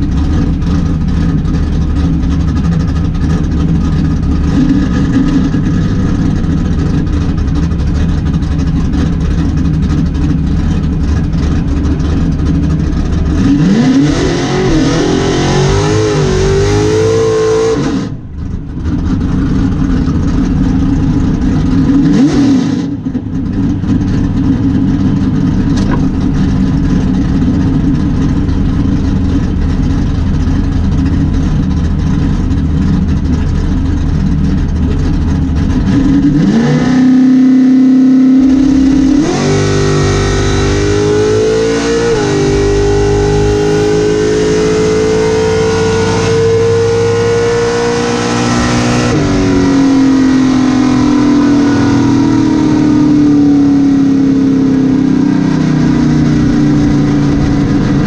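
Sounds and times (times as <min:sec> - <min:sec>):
racing car engine revving: 0:00.0 - 0:58.0.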